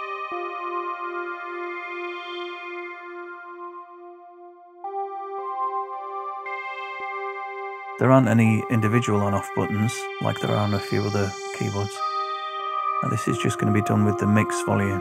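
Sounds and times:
synthesizer held chord: 0.0s - 15.0s.

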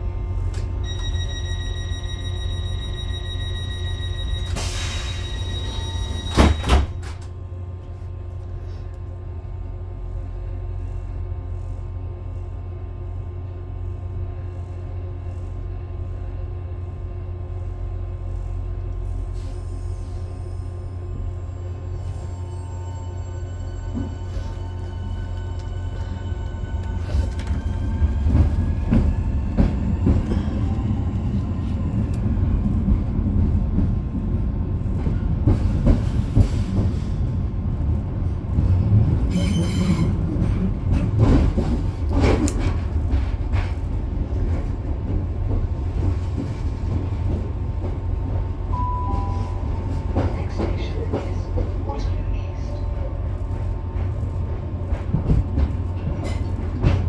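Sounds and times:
wheels rumbling on rail: 0.0s - 57.0s.

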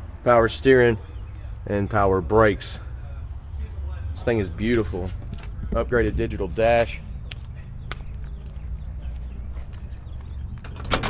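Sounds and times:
soft footsteps: 4.6s - 10.8s
door latch releasing: 10.6s - 11.0s.

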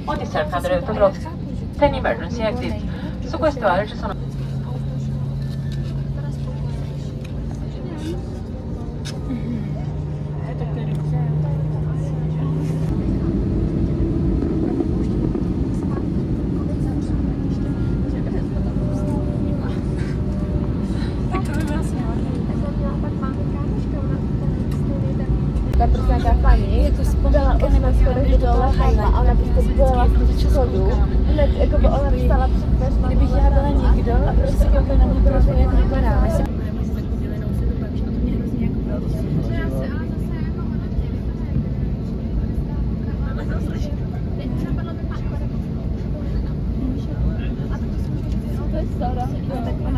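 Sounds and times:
aircraft cabin engine noise: 0.0s - 49.9s
heavy low rumble: 0.0s - 49.9s
steady low hum: 0.0s - 49.9s.

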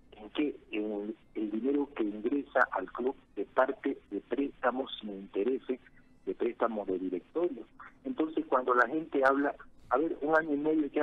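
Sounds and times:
man talking over phone: 0.1s - 11.0s.

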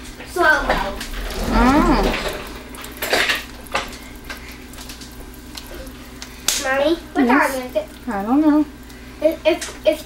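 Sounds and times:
batter pouring: 0.0s - 10.0s.

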